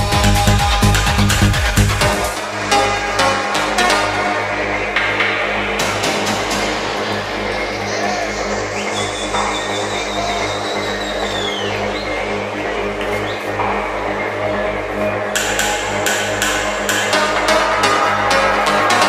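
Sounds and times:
deep bass line: 0.0s - 19.0s
electronic dance music: 0.0s - 19.0s.

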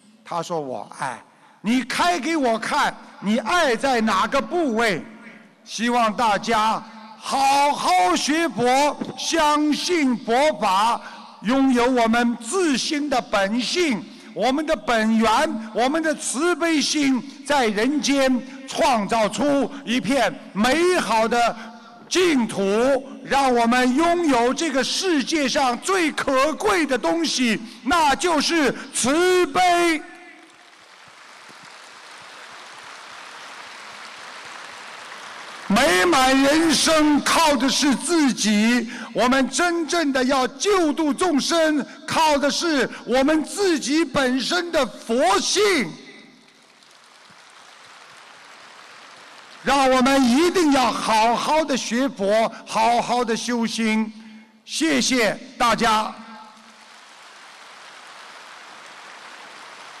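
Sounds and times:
man speaking: 0.1s - 30.4s, 35.7s - 46.2s, 49.6s - 56.4s
audience applauding: 30.3s - 36.1s, 46.4s - 49.7s, 56.6s - 60.0s.

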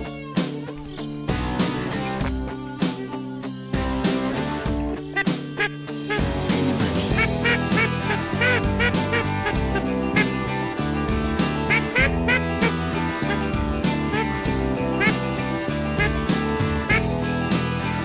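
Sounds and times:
rock music with steady beat: 0.0s - 18.0s
duck call quacks: 5.1s - 6.4s, 7.1s - 10.4s, 11.7s - 13.5s, 14.1s - 14.4s, 15.0s - 15.2s, 16.0s - 16.2s, 16.9s - 17.1s.

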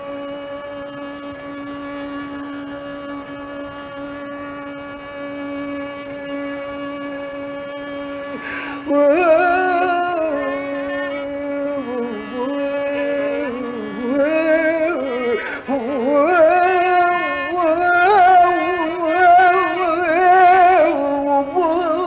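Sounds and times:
long held note: 0.0s - 22.0s
wavering ornamented phrase: 0.0s - 22.0s.

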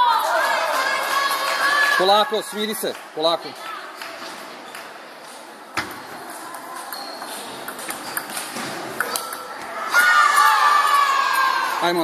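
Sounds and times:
table tennis ball clicking: 6.5s - 9.6s
loud shouting voices: 9.7s - 12.0s.

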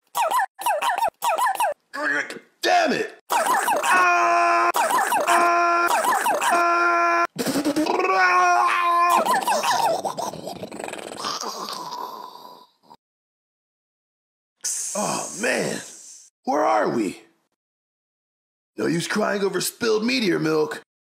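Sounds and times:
person screaming: 3.3s - 9.8s.

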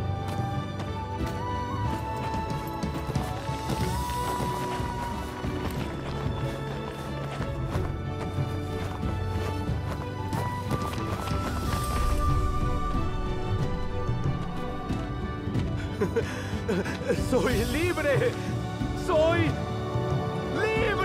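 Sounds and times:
film score music: 0.0s - 21.0s.

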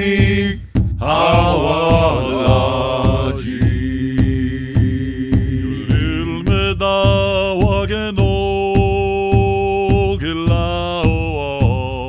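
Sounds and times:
person singing a chant: 0.0s - 12.0s
steady drum beat: 0.0s - 12.0s.

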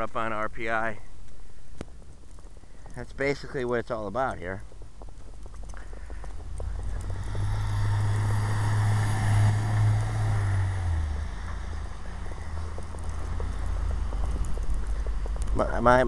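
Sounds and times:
vehicle driving past: 6.3s - 15.6s.

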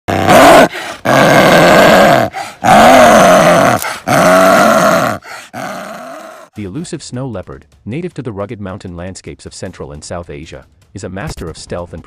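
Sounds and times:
snow leopard growling: 0.1s - 6.5s
snow leopard breaths: 0.7s - 1.1s, 2.3s - 2.6s, 3.8s - 4.1s, 5.2s - 5.6s.

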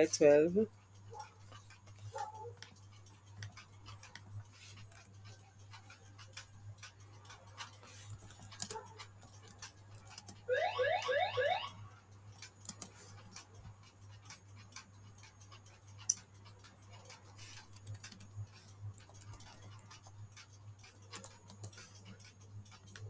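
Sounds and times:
steady low hum: 0.0s - 23.0s
keyboard keys clicking: 12.3s - 23.0s.

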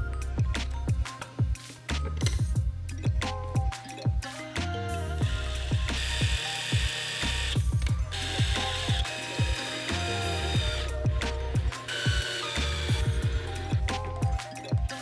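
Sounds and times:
background music with beat: 0.0s - 15.0s
cordless drill driving screws: 5.2s - 13.9s
drill clutch ratcheting: 5.3s - 11.0s, 11.8s - 13.9s.

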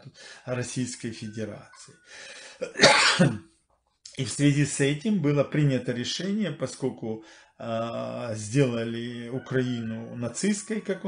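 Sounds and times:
man clearing his throat: 2.6s - 3.5s.

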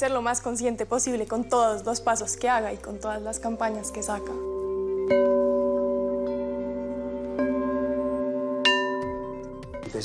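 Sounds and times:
singing bowl struck and ringing: 3.5s - 10.0s.

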